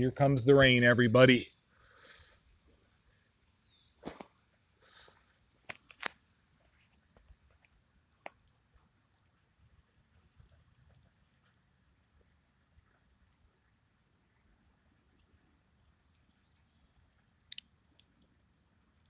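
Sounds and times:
soft hissy puffs: 1.6 - 17.4
sharp clicks: 17.4 - 18.2.

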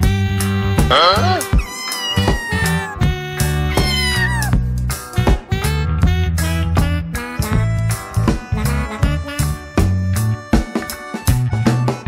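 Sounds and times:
background music with guitar and beat: 0.0 - 12.0
cat meowing: 0.9 - 4.6.

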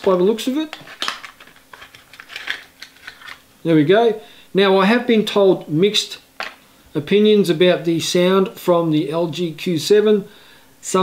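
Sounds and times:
card and cable crinkling: 0.0 - 3.4.

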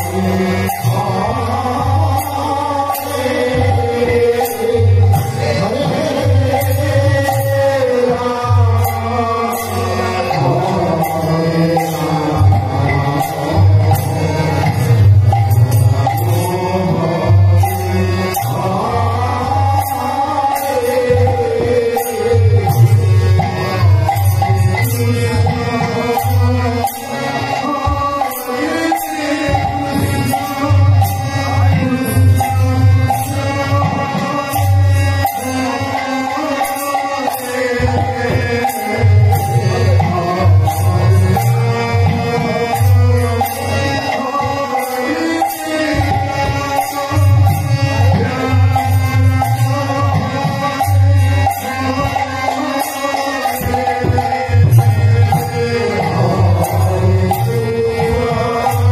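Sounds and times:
hand cymbals striking a beat: 0.0 - 58.9
harmonium: 0.0 - 58.9
mridanga drum: 0.0 - 58.9.

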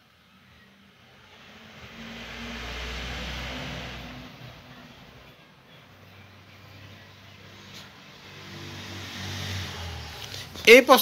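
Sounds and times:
vehicle passing by: 0.6 - 10.9.

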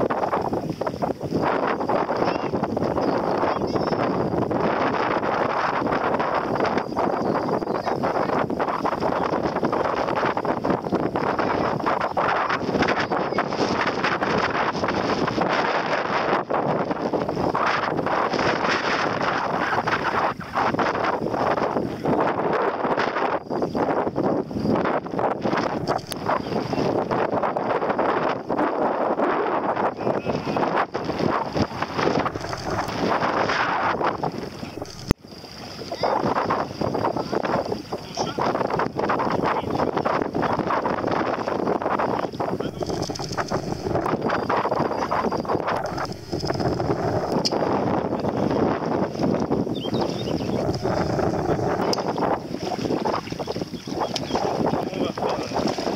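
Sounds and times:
wind blowing across microphone: 0.0 - 55.9.

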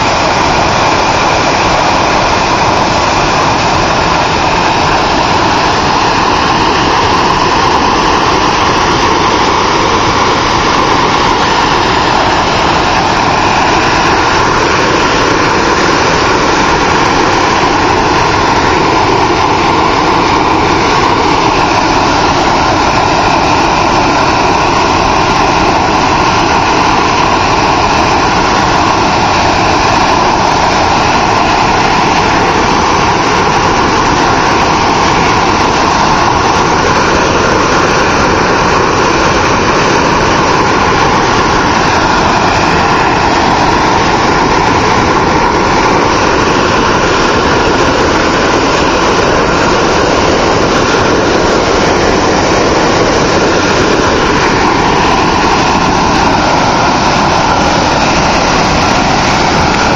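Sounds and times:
water jets roaring into river: 0.0 - 59.9.

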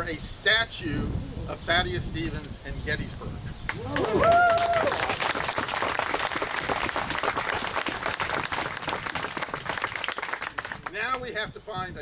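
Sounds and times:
audience applauding: 3.7 - 11.0.

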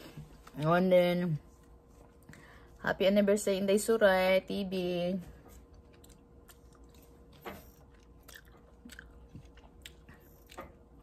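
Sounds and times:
chewing blueberries: 5.5 - 11.0.

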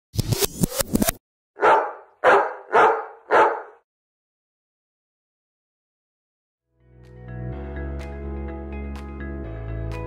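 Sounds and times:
dog barking: 1.6 - 3.8.

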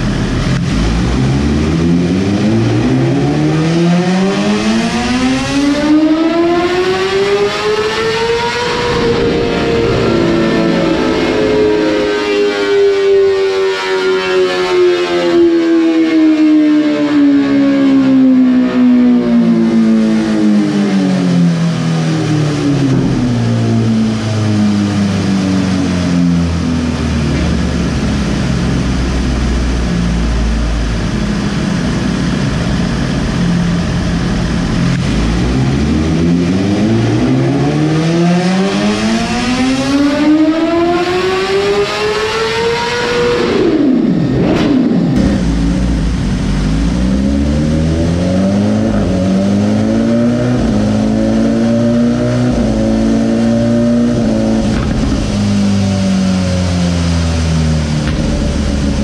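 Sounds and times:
motorcycle engine on dyno: 0.0 - 59.0.

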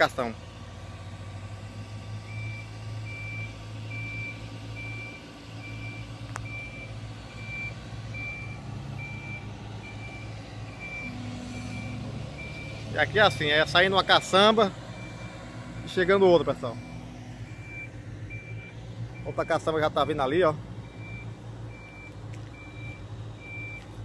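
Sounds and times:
excavator diesel engine running: 0.0 - 24.0
backup alarm beeping: 2.2 - 12.9, 16.6 - 23.9.

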